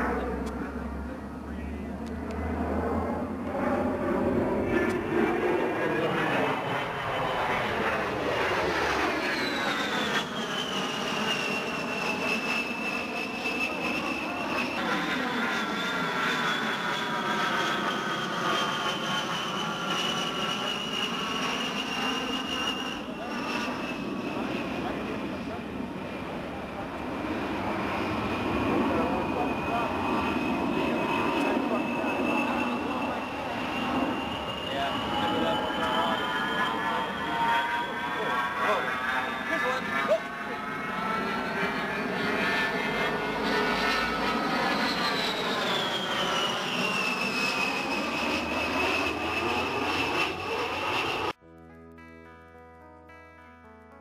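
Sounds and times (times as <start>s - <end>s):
jet engines whining in flight: 0.0s - 51.4s.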